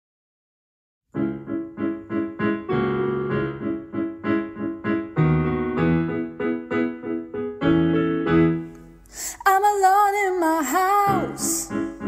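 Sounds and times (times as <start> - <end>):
piano playing chords: 1.1 - 12.0
young female voice singing: 9.4 - 12.0.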